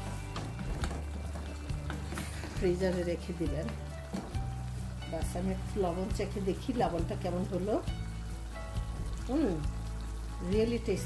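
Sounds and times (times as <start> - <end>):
background music: 0.0 - 11.0
curry simmering with soft sizzle: 0.0 - 11.0.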